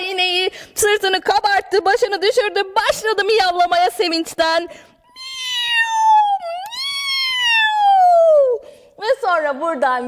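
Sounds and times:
woman imitating cat meow: 0:05.2 - 0:08.6.

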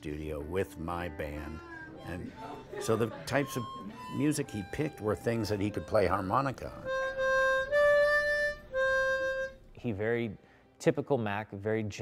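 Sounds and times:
harmonica playing slow melody: 0:00.0 - 0:09.9.

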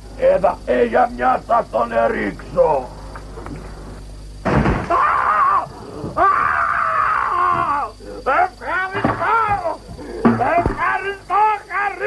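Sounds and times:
woman screaming: 0:04.9 - 0:07.9.

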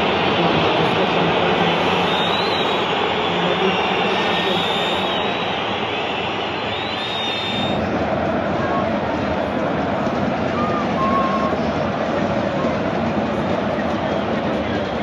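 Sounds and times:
crowd chanting and shouting: 0:00.0 - 0:15.0
high whistles: 0:01.8 - 0:07.9.

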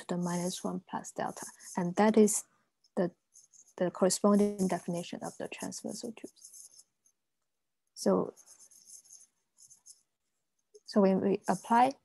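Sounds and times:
stylus scratching on glass screen: 0:00.0 - 0:07.2, 0:08.0 - 0:12.0.

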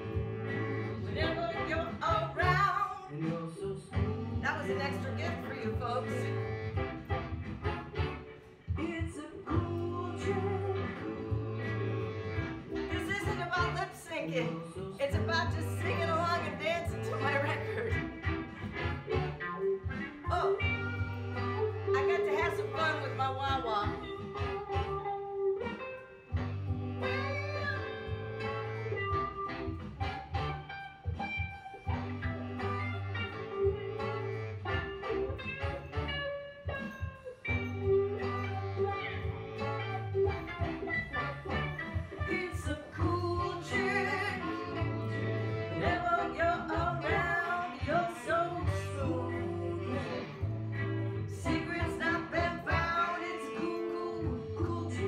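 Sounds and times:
repeating bass line: 0:00.0 - 0:02.6, 0:04.0 - 0:08.3, 0:09.5 - 0:13.8, 0:15.1 - 0:25.0, 0:26.3 - 0:31.2, 0:37.5 - 0:53.0
person singing: 0:00.0 - 0:06.6, 0:08.8 - 0:18.4, 0:41.1 - 0:55.0
blues guitar: 0:00.0 - 0:55.0.

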